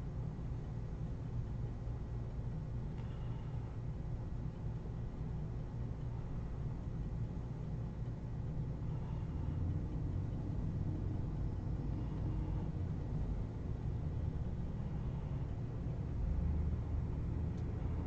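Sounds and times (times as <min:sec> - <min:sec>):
low room noise rumble: 0:00.0 - 0:18.0
faint tick: 0:02.3 - 0:03.2, 0:05.4 - 0:11.8, 0:17.5 - 0:17.7.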